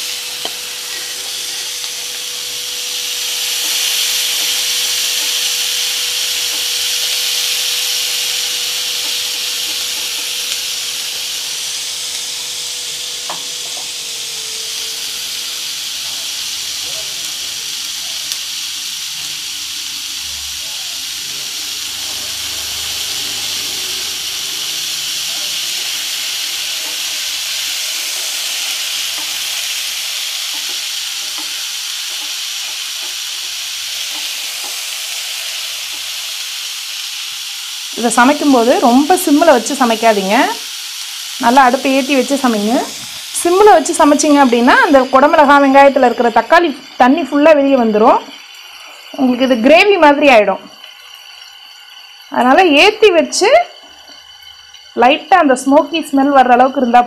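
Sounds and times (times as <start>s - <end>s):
vegetables sizzling in a pan: 0.0s - 57.0s
wooden spatula scraping a pan: 0.5s - 1.8s.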